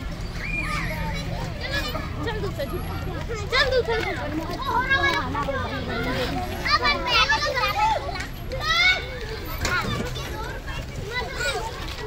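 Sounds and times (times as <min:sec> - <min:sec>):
children shouting in play: 0:00.0 - 0:12.0
child's high-pitched squeal: 0:00.3 - 0:02.0.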